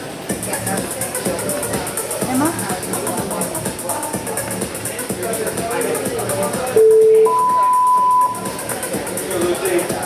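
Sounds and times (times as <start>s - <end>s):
timer beeps over sound system: 6.7s - 8.8s.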